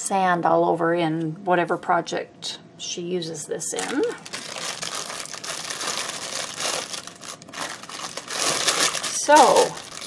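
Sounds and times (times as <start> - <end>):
craft materials crinkling: 3.8 - 10.0.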